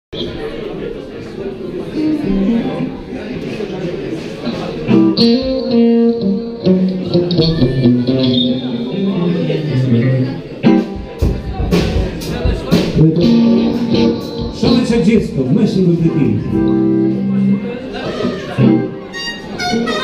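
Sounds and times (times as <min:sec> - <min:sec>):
people's voices: 0:00.2 - 0:20.0
electric guitar blues notes: 0:01.9 - 0:03.1, 0:04.5 - 0:11.9, 0:12.7 - 0:20.0
drum hits: 0:10.7 - 0:15.4.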